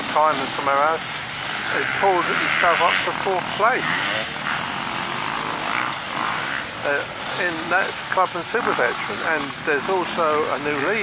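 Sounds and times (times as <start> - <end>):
motorcycle engine passing: 0.0 - 11.0.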